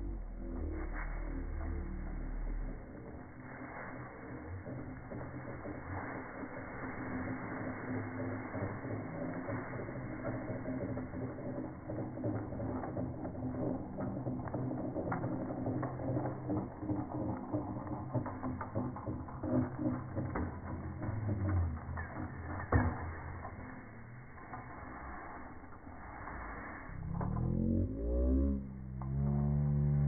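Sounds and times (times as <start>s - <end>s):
trolley rolling on steel cable: 0.0s - 30.0s.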